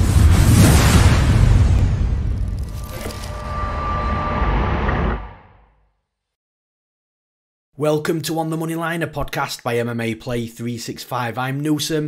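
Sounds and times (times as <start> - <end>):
glitchy crackle: 0.0 - 5.5
deep rumbling drone: 0.0 - 5.8.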